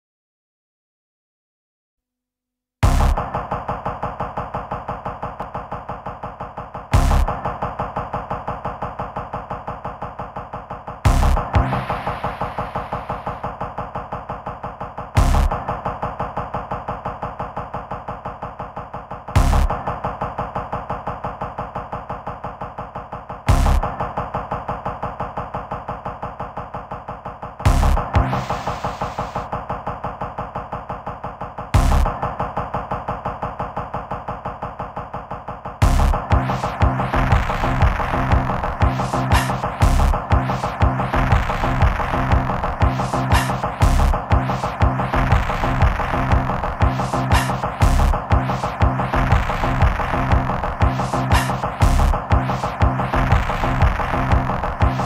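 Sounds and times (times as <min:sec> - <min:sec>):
fast repeated percussive sample: 0:02.8 - 0:55.0
sampler stuttering sample: 0:35.8 - 0:55.0.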